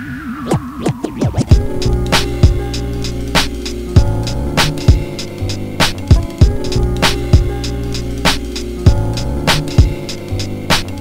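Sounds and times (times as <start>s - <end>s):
wavering tone: 0.0s - 3.3s
hip hop beat: 0.0s - 11.0s
record scratches: 0.1s - 11.0s.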